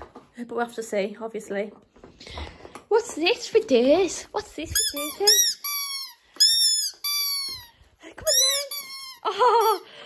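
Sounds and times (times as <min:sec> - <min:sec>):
squeaky toy squawks: 0:04.8 - 0:09.8.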